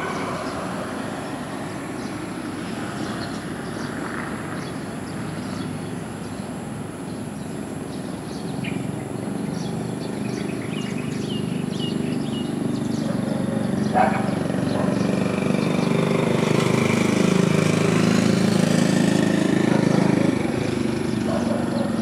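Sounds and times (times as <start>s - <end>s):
road vehicle rumble: 0.0s - 22.0s.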